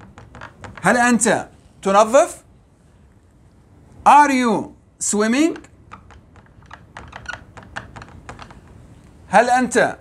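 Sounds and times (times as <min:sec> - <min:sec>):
marker pen writing on whiteboard: 0:00.0 - 0:01.5, 0:05.3 - 0:08.8.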